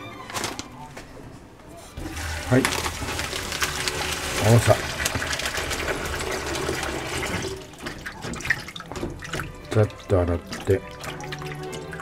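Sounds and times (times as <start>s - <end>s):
tap water running into colander: 2.0s - 12.0s.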